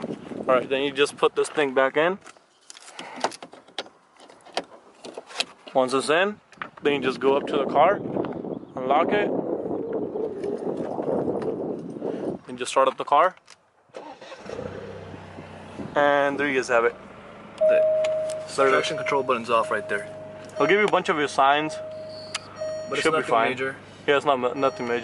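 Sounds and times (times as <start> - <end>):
car engine starting and idling: 14.0 - 25.0.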